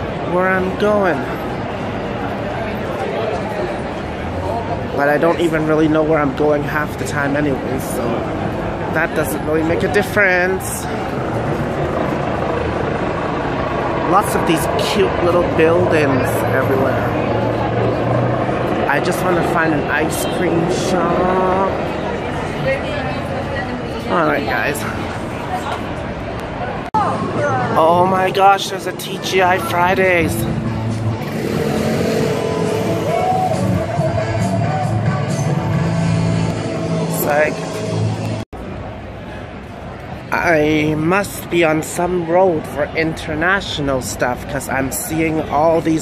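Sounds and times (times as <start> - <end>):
crowd of pedestrians: 0.0 - 46.0
traffic rumble: 0.0 - 46.0.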